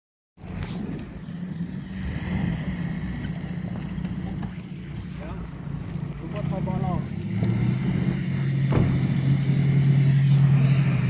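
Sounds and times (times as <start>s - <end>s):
tyres on snow: 0.4s - 11.0s
van diesel engine rumbling: 0.4s - 11.0s.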